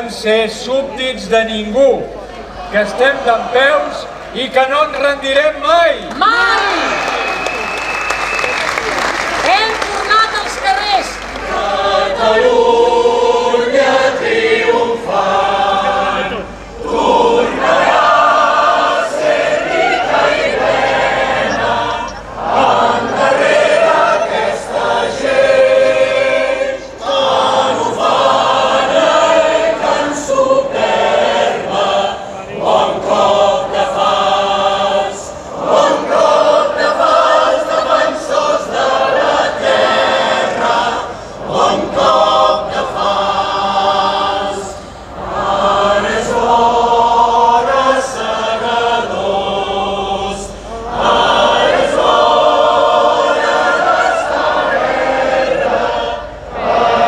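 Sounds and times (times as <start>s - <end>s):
large choir singing: 11.0s - 57.0s.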